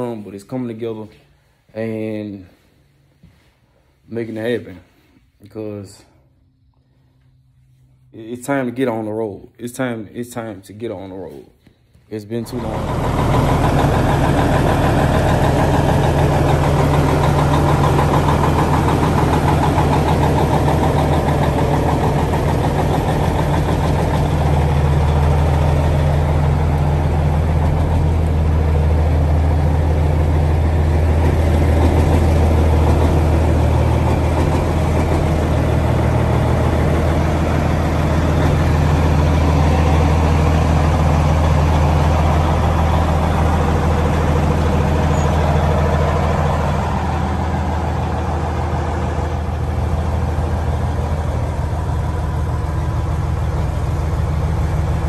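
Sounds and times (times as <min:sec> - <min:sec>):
diesel truck engine idling: 0:12.3 - 0:55.0.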